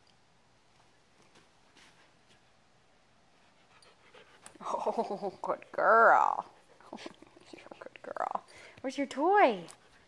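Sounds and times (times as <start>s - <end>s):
faint movement sounds: 0.6s - 10.0s.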